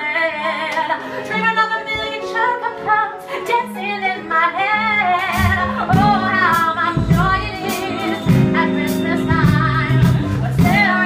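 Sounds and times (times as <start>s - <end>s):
instrumental accompaniment: 0.0s - 11.0s
woman singing pop song: 0.0s - 11.0s.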